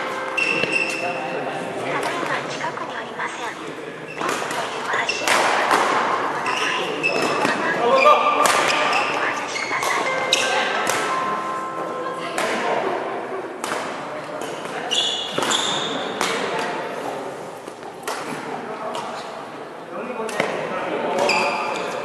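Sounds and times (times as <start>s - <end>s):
shoe squeaks: 0.0s - 1.2s, 4.0s - 5.4s, 6.3s - 10.8s, 14.4s - 16.1s, 21.2s - 22.0s
racket hitting shuttlecock: 0.1s - 1.0s, 4.2s - 7.6s, 8.4s - 9.2s, 9.8s - 11.4s, 12.4s - 12.8s, 13.6s - 16.8s, 17.6s - 19.2s.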